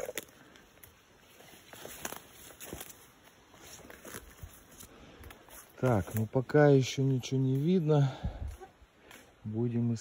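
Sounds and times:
footsteps on leaves and twigs: 0.0s - 9.6s.

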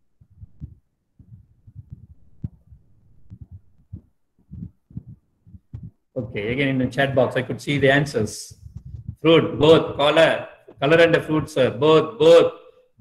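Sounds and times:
soft low thumps: 0.0s - 11.8s.

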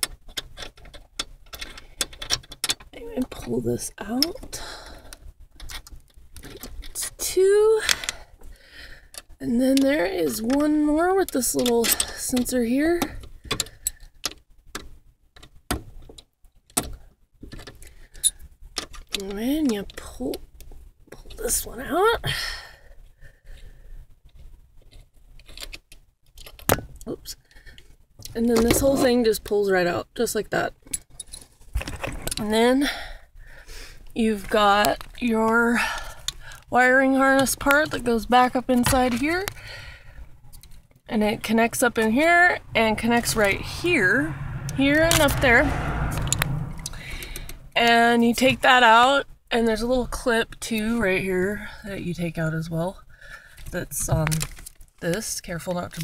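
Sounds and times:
small clicks and scrapes of plastic: 0.0s - 3.4s, 23.6s - 29.2s, 53.4s - 56.0s.

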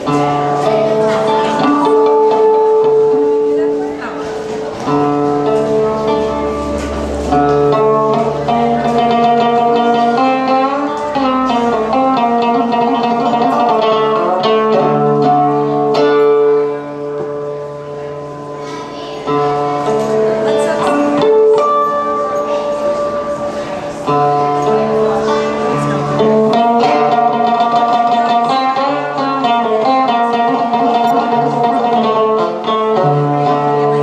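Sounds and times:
plucked string instrument melody: 0.0s - 34.0s.

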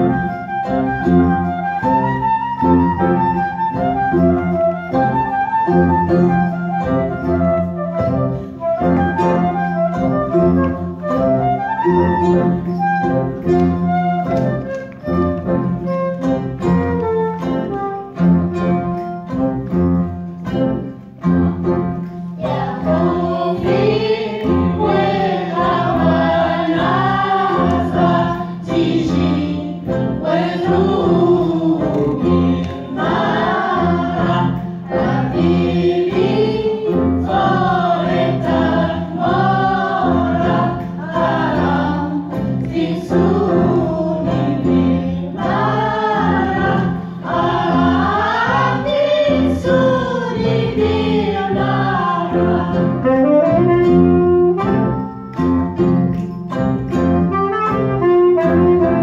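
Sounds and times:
women singing together: 22.4s - 53.1s.

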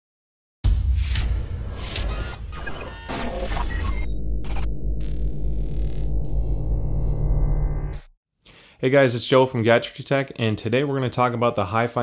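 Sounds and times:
glitchy electronic chirps: 2.0s - 8.1s
deep bass rumble: 4.2s - 8.1s.

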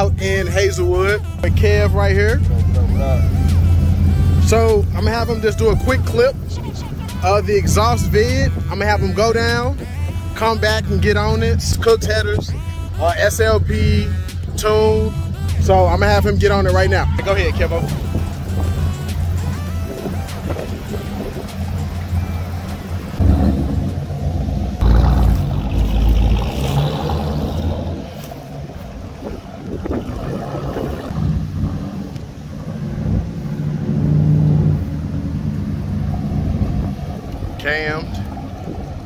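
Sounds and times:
car engine at full throttle: 0.0s - 9.8s, 10.4s - 39.0s.

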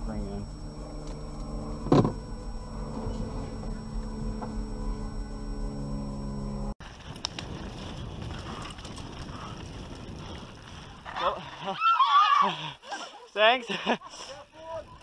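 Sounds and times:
vehicle engine idling: 0.0s - 6.8s
bike tyres on dirt trail: 0.9s - 15.0s.

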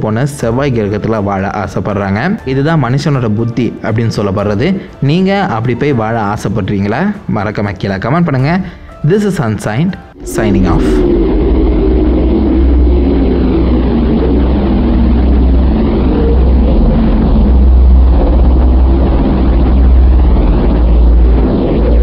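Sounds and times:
deep rumble: 10.1s - 22.0s
whooshing sweeps: 10.2s - 22.0s.

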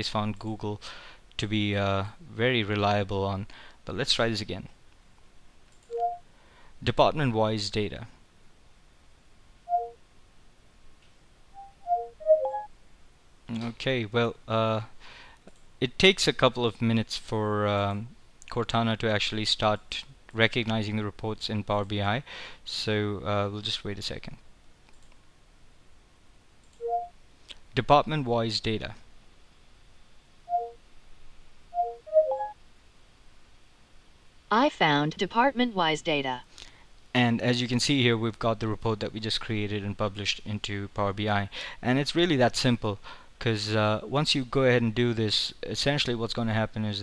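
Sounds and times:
falling electronic tones: 5.9s - 6.2s, 9.7s - 10.0s, 11.6s - 12.7s, 26.8s - 27.1s, 30.5s - 30.8s, 31.8s - 32.6s
two-note electronic tone: 5.9s - 6.2s, 9.7s - 10.0s, 11.6s - 12.7s, 26.8s - 27.1s, 30.5s - 30.8s, 31.8s - 32.6s.

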